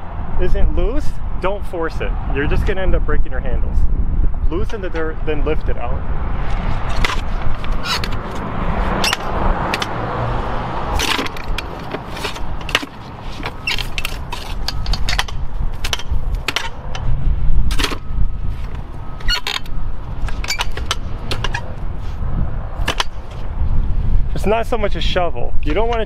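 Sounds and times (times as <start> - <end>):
digger scraping dirt: 10.8 - 16.9
post hole digger crunching into dirt: 10.9 - 16.9.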